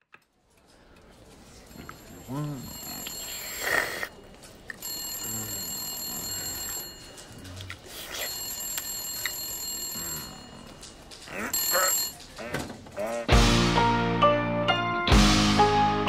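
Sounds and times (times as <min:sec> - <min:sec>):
telephone bell ringing: 0:01.7 - 0:07.4, 0:08.1 - 0:12.6.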